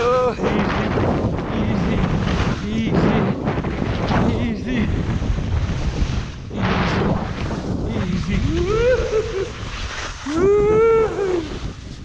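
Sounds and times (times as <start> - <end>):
wind buffeting microphone: 0.0 - 12.0
skis scraping over snow: 0.5 - 12.0.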